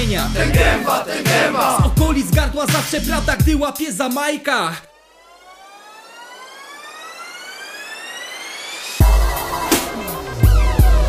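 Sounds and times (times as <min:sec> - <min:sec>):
hip hop beat: 0:00.0 - 0:04.8, 0:09.0 - 0:11.0
synthesized rising tone: 0:04.9 - 0:10.6.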